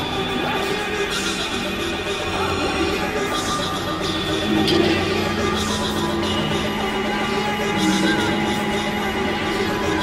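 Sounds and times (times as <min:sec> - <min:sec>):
dense noisy wash: 0:00.0 - 0:10.0
layered synthesizer drones: 0:00.0 - 0:10.0.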